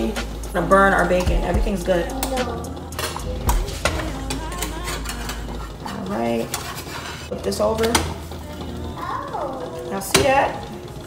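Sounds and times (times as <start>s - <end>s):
utensil stirring batter in cup: 0.0s - 8.9s.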